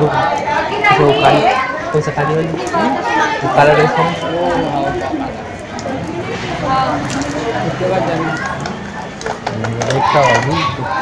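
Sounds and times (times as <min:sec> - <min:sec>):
children's voices: 0:00.0 - 0:11.0
overlapping talk of people: 0:00.0 - 0:11.0.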